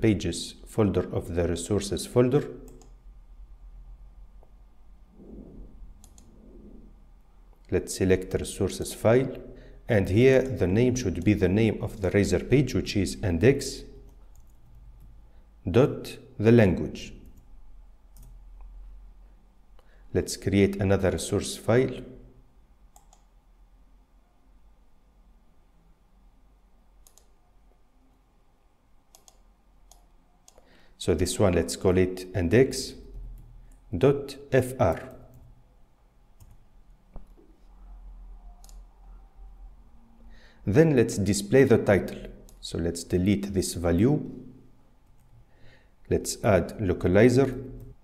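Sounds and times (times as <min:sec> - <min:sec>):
low room hum: 0:00.0 - 0:48.0
keyboard and mouse clicks: 0:06.0 - 0:06.4, 0:22.9 - 0:23.3, 0:27.0 - 0:27.3, 0:29.1 - 0:30.6, 0:38.6 - 0:38.8.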